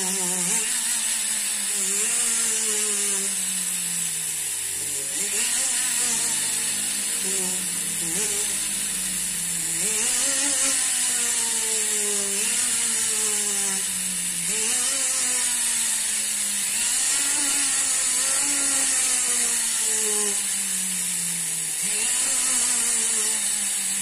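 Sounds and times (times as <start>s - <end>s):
rotary tool grinding: 0.0s - 24.0s.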